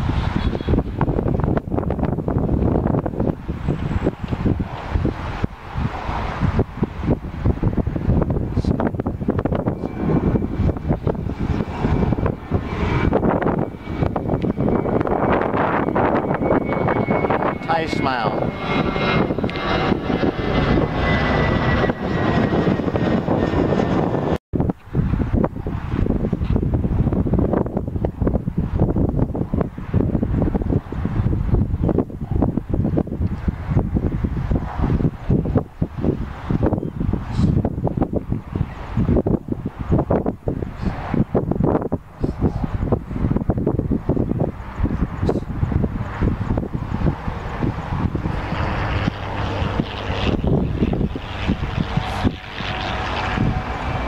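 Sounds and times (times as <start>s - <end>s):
jet airliner passing overhead: 0.0s - 54.0s
wind buffeting microphone: 0.0s - 54.0s.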